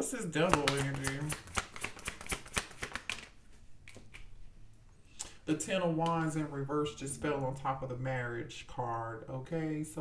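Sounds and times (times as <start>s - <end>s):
cards being shuffled: 0.4s - 4.3s.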